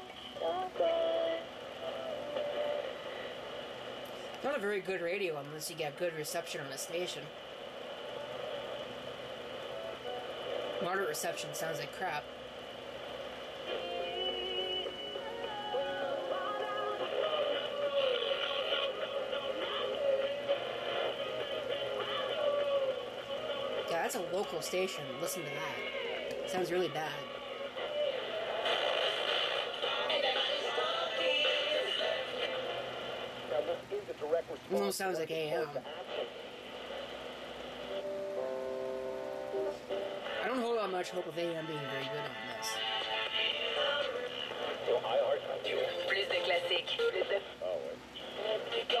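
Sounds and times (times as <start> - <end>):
bad radio reception: 0.0 - 38.4, 39.5 - 49.0
radio playing music with singing: 0.0 - 49.0
thin steady whine: 0.0 - 49.0
held music notes: 37.9 - 40.2.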